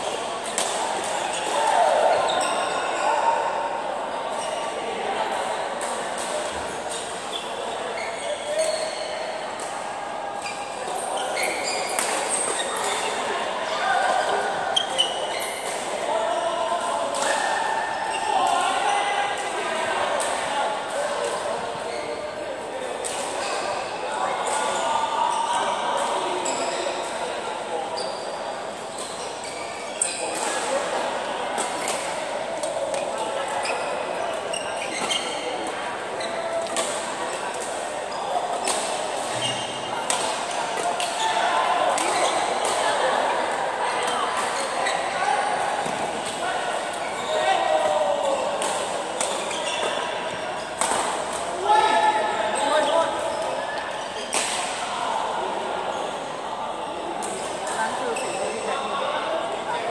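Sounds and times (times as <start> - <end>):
voices echoing in hall: 0.0 - 59.9.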